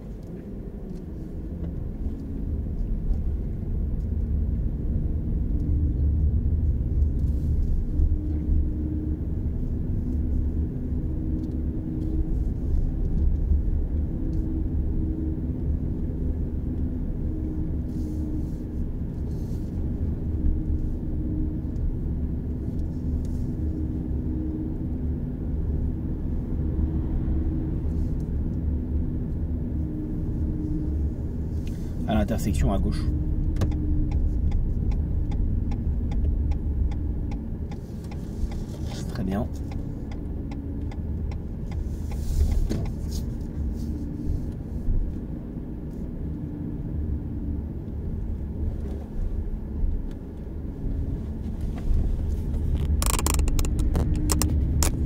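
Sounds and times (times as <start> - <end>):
road and tyre rumble: 0.0 - 55.0.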